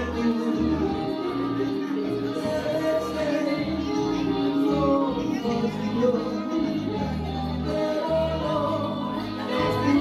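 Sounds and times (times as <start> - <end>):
instrumental backing track: 0.0 - 10.0
man singing into microphone: 0.0 - 10.0.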